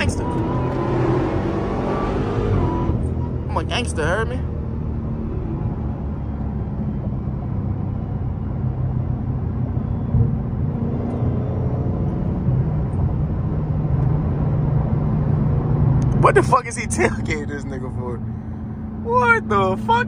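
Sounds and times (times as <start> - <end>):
low engine drone: 0.0 - 20.0
road noise: 0.0 - 20.0.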